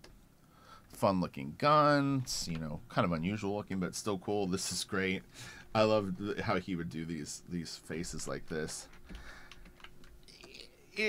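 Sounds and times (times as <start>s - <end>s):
computer keys clicking: 8.9s - 10.3s.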